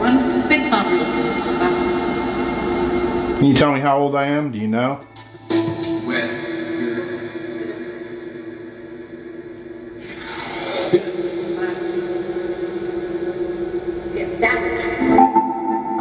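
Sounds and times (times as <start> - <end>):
voices: 0.0 - 7.9, 10.0 - 12.7, 14.1 - 16.0
steady drone: 0.0 - 16.0.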